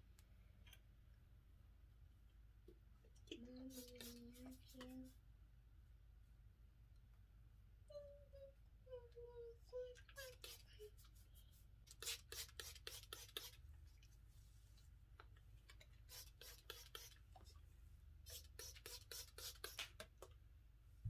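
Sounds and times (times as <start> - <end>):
person humming: 3.3 - 5.1, 7.9 - 11.0
spray bottle spritzes: 3.7 - 4.6, 10.2 - 10.8, 11.9 - 13.6, 16.0 - 17.2, 18.2 - 20.1.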